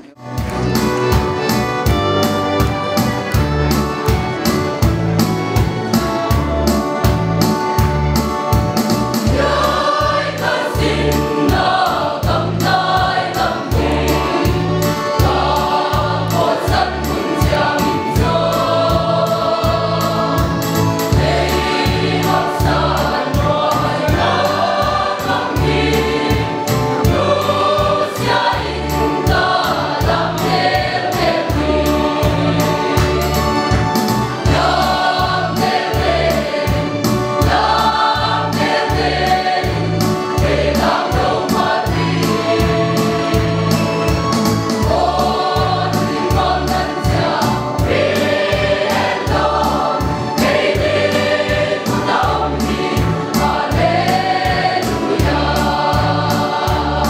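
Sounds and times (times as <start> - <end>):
mixed choir singing a hymn: 1.8 - 57.0.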